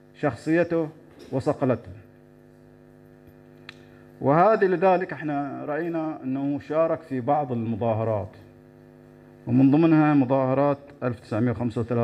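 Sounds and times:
steady electrical hum: 0:00.0 - 0:12.0
faint click: 0:03.6 - 0:03.9.

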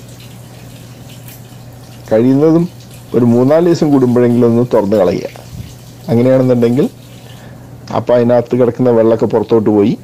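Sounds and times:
low steady hum: 0:00.0 - 0:10.0
water trickling into fish tank: 0:00.0 - 0:10.0.

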